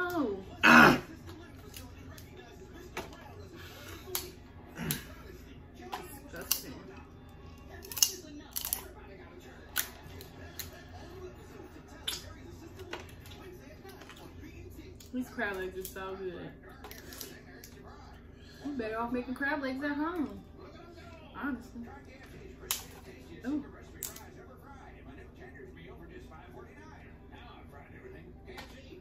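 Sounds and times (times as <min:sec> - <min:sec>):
crab shells cracking by hand: 0:06.4 - 0:06.7, 0:07.8 - 0:08.9, 0:09.7 - 0:10.8, 0:24.0 - 0:24.2.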